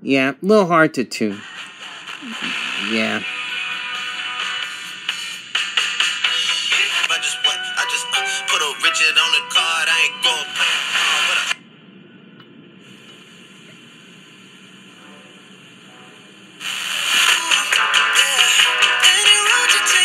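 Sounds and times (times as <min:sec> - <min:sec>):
radio static hiss: 0:01.2 - 0:06.7, 0:10.2 - 0:11.6, 0:12.8 - 0:18.7
radio music through speaker: 0:01.2 - 0:11.6, 0:12.9 - 0:20.0.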